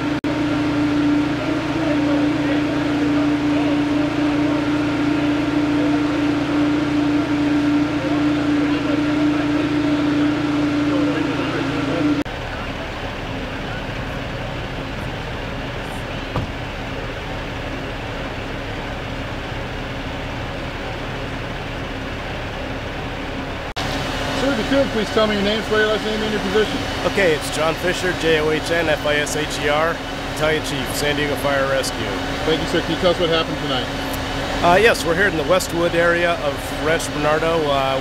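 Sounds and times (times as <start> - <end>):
engine humming: 0.0 - 38.0.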